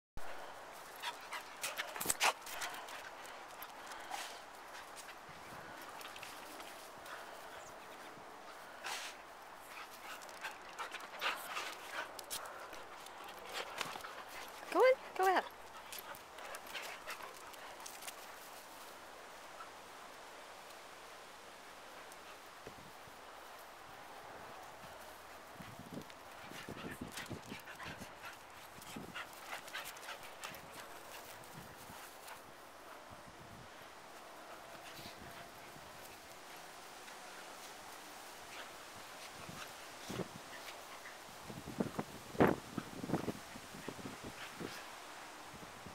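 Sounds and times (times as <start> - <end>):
dogs panting: 0.2 - 19.0, 24.7 - 33.1
dogs scuffling: 0.7 - 19.0.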